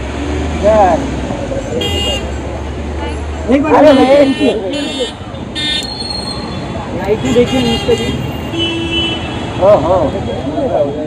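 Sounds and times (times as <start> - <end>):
street traffic: 0.0 - 11.0
people's voices: 0.5 - 8.5, 9.4 - 11.0
vehicle horn toot: 1.8 - 2.3, 3.8 - 6.0, 7.2 - 9.4.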